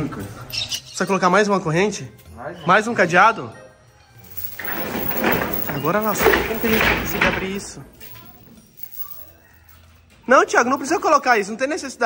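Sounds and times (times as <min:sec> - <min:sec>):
steel chain rattling and scraping: 0:04.2 - 0:11.3.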